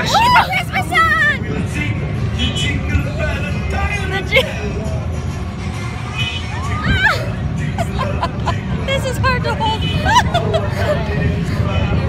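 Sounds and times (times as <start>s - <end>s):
ride music playing: 0.0s - 12.0s
steady low rumble: 0.0s - 12.0s
riders' voices: 6.9s - 12.0s.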